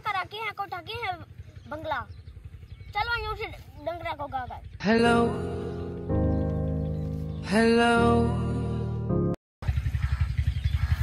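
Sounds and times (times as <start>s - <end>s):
engine idling: 0.0s - 7.3s, 9.6s - 11.0s.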